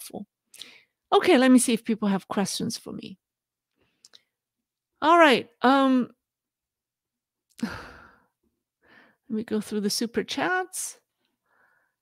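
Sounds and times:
woman sighing: 0:07.6 - 0:08.3.

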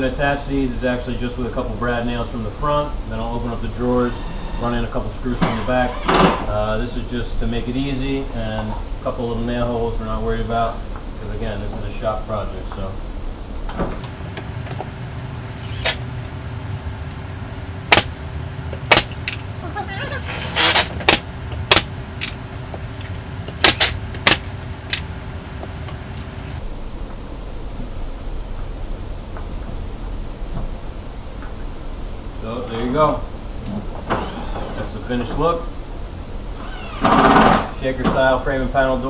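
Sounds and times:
steady background hum: 0:00.0 - 0:39.0
pneumatic nailer firing: 0:03.9 - 0:06.7, 0:15.6 - 0:16.0, 0:17.9 - 0:18.1, 0:18.8 - 0:19.3, 0:20.6 - 0:21.9, 0:23.5 - 0:24.5, 0:34.0 - 0:35.2, 0:36.5 - 0:38.3.

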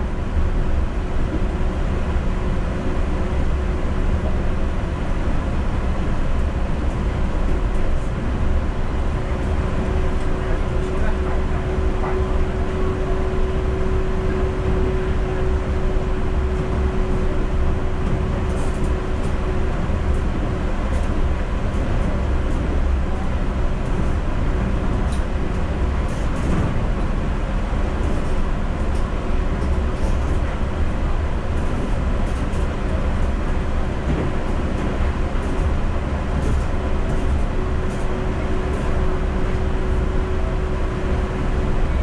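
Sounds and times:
train rumbling: 0:00.0 - 0:42.0.

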